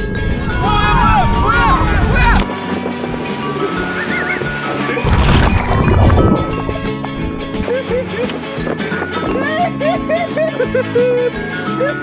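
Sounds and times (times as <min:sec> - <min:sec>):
background music: 0:00.0 - 0:12.0
loud water splash: 0:03.4 - 0:07.6.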